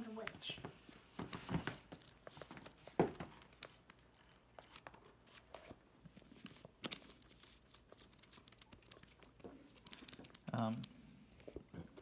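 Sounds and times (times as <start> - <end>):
paper pages rustling: 0.1 - 12.0.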